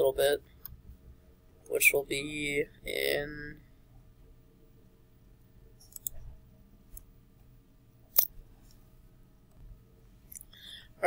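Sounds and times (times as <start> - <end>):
computer mouse clicks: 5.8 - 6.3.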